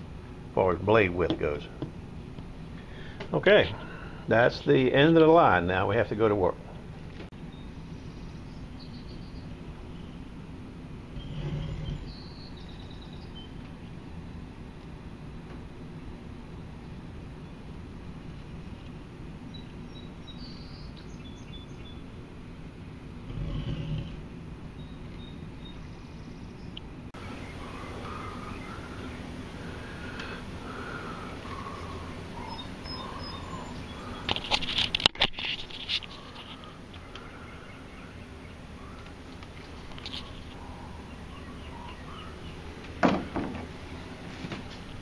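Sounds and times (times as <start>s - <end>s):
low steady rumble: 0.0s - 34.3s
distant birds chirping: 0.0s - 35.0s, 35.6s - 45.0s.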